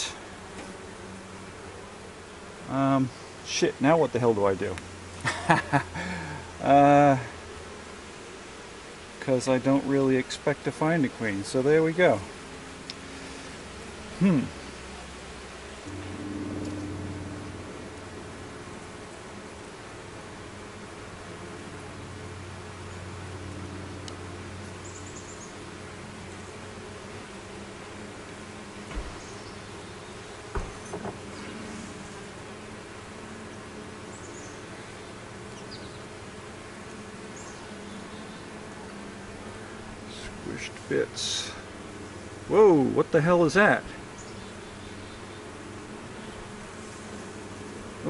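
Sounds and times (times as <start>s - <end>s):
bees buzzing: 0.0s - 48.0s
honeybees humming: 0.0s - 48.0s
short knocks: 30.5s - 31.2s.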